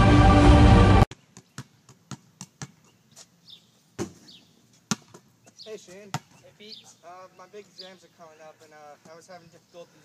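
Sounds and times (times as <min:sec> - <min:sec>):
basketball hitting backboard and rim: 0:04.9 - 0:05.2.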